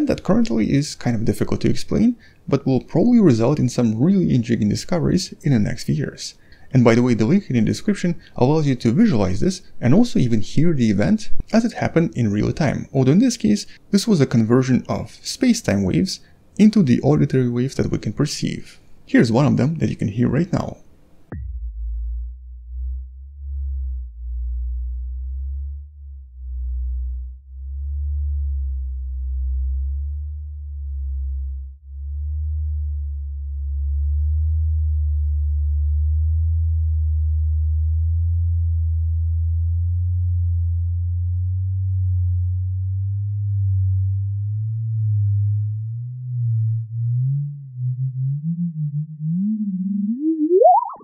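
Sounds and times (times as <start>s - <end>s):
deep wobbling hum: 21.3s - 51.0s
rising chirp: 46.2s - 51.0s.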